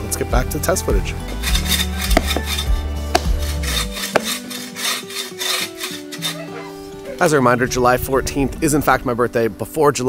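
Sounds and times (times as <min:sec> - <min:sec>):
background music low tone: 0:00.0 - 0:10.0
bow saw cutting log: 0:01.2 - 0:07.3.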